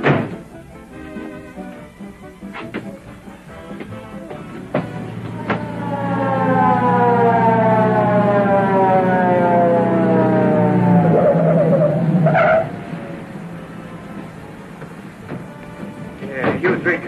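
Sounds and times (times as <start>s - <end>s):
car engine humming: 0.0s - 17.0s
police siren falling wail: 5.0s - 13.0s.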